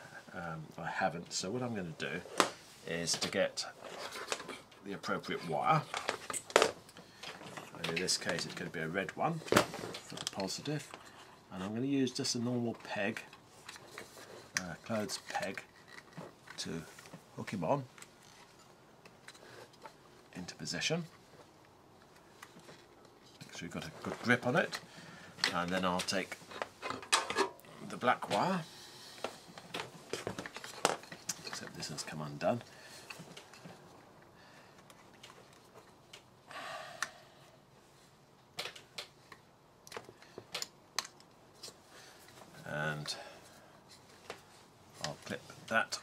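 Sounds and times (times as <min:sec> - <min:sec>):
scraping rustle: 0:02.0 - 0:06.5.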